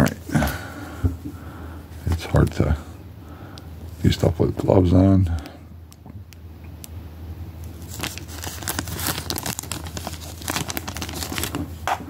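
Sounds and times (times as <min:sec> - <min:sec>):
paper rustling and crinkling: 0:07.8 - 0:12.0.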